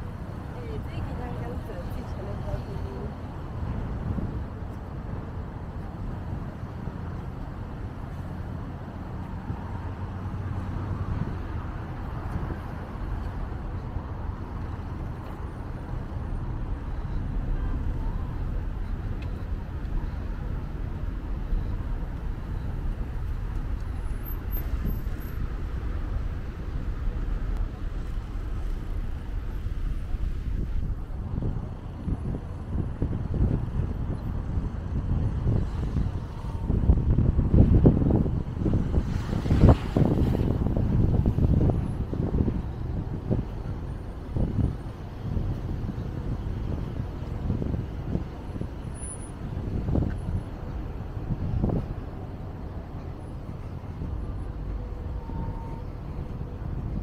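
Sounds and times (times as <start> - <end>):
cars passing on road: 0.0 - 57.0
wind buffeting microphone: 0.0 - 57.0.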